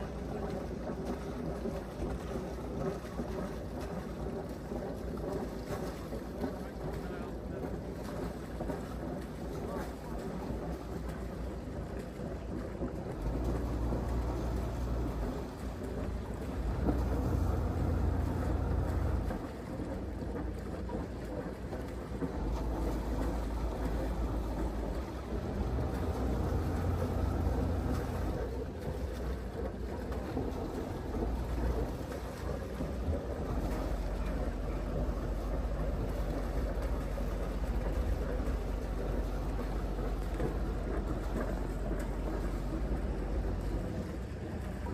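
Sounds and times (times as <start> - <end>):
boat diesel engine running: 0.0 - 44.9
water around boat: 0.0 - 44.9
wind buffeting microphone: 0.0 - 44.9.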